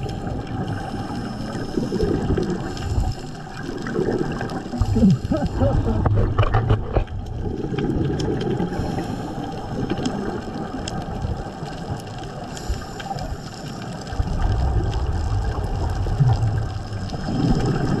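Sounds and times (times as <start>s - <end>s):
diver's regulator breathing: 0.0s - 3.9s, 8.5s - 10.0s, 12.5s - 14.2s
exhaled bubbles burbling: 0.0s - 12.4s, 14.1s - 18.0s
faint clicks: 6.1s - 17.2s.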